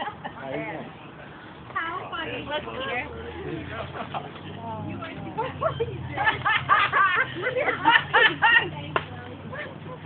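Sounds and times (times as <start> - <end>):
people exclaiming and laughing: 2.1 - 10.0.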